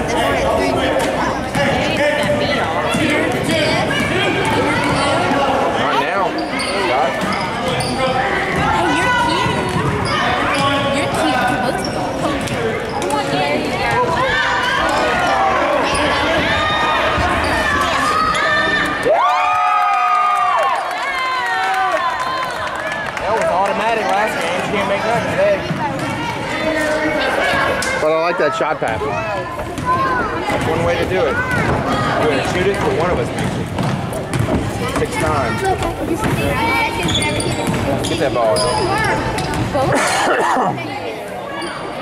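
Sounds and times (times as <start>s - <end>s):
crowd chatter and shouts: 0.0s - 42.0s
basketball bouncing on hardwood: 33.4s - 35.2s.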